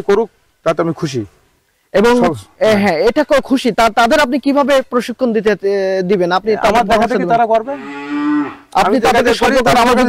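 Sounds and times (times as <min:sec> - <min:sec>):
man talking: 0:00.0 - 0:01.3, 0:01.9 - 0:07.9, 0:08.7 - 0:10.0
cow mooing: 0:07.6 - 0:08.9.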